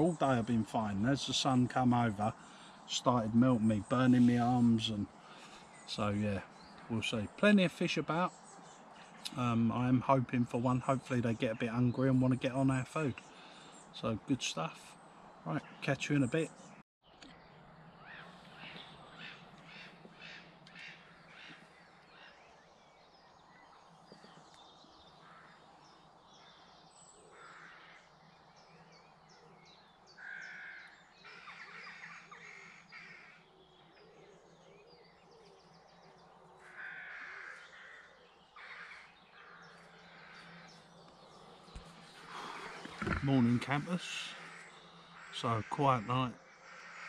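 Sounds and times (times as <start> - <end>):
birds calling: 0.0 - 47.0.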